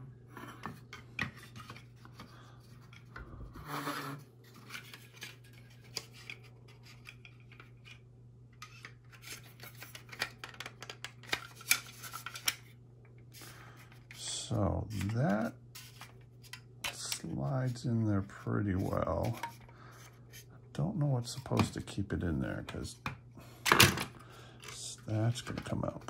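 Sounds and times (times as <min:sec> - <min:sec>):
plastic parts clicking and rubbing: 0:04.5 - 0:12.7.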